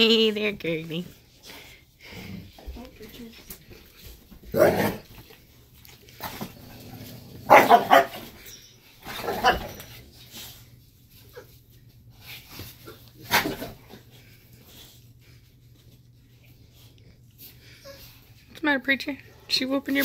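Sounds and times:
dogs barking: 0:07.5 - 0:08.3.

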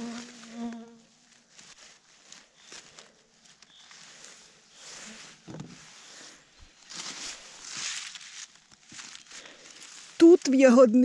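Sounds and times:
flying insect buzzing: 0:00.0 - 0:01.2.

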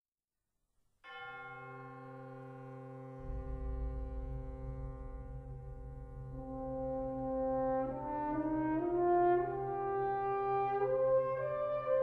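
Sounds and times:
wind band sustained chord: 0:03.1 - 0:11.9.

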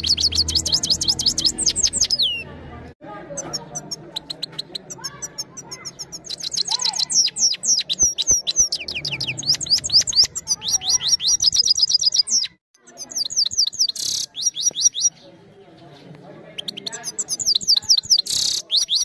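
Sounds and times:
goldfinch singing trills: 0:00.0 - 0:02.5, 0:03.4 - 0:15.2.

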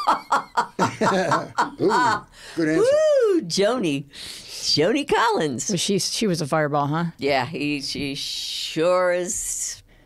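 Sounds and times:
people laughing: 0:00.0 - 0:02.2.

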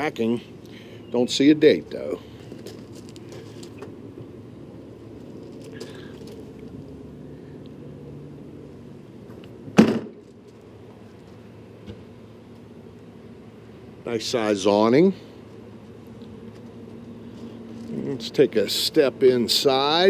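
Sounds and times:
steady low hum: 0:00.0 - 0:20.0
storage door banging shut: 0:09.8 - 0:10.2.

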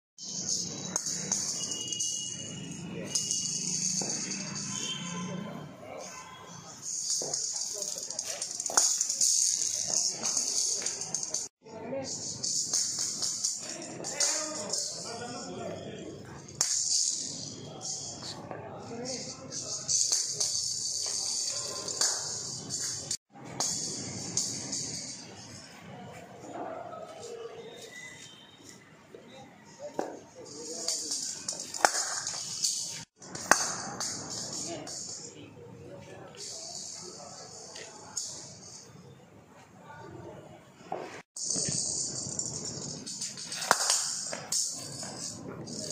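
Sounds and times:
rattling ball rolling: 0:06.7 - 0:15.4, 0:19.2 - 0:25.7, 0:30.0 - 0:35.6, 0:41.4 - 0:45.9.

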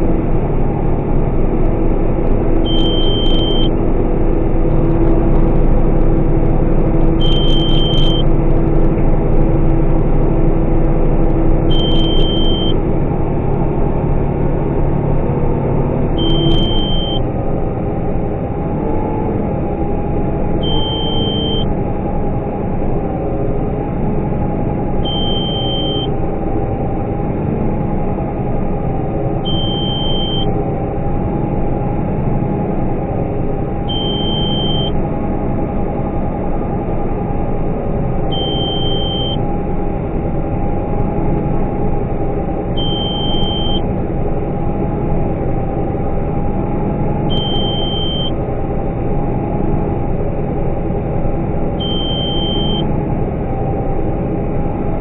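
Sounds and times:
combine harvester running: 0:00.0 - 0:55.0
in-cab warning beep: 0:02.7 - 0:03.8, 0:04.8 - 0:10.2, 0:10.8 - 0:12.8, 0:16.2 - 0:17.2, 0:20.6 - 0:21.7, 0:25.0 - 0:26.1, 0:29.5 - 0:30.6, 0:33.9 - 0:35.0, 0:38.3 - 0:39.4, 0:42.8 - 0:43.9, 0:47.3 - 0:48.4, 0:51.8 - 0:52.9.

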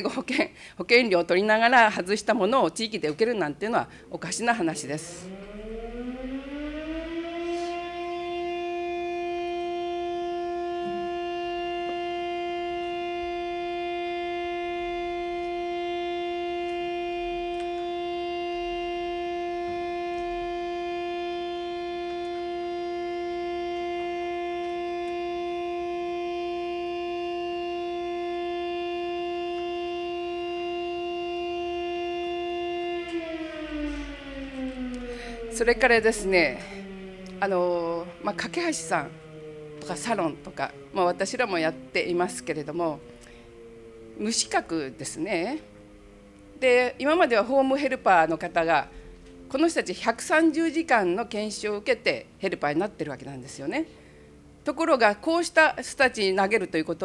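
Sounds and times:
warning siren: 0:00.0 - 0:57.0.

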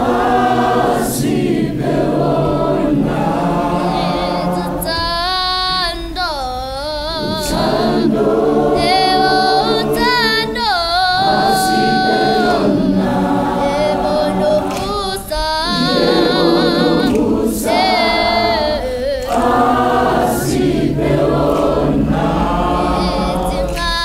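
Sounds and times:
gospel choir singing in harmony: 0:00.0 - 0:24.0
high voice singing with vibrato: 0:00.0 - 0:24.0.

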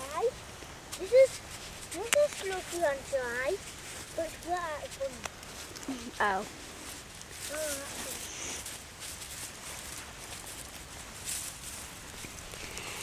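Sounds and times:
dry grass rustling: 0:00.0 - 0:13.0.

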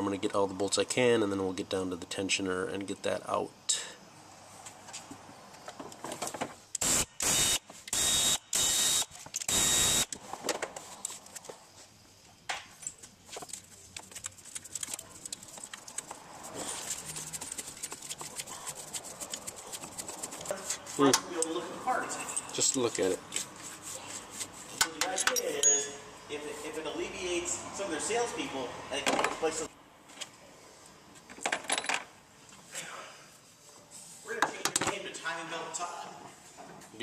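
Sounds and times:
power tool bursts: 0:06.8 - 0:10.1.

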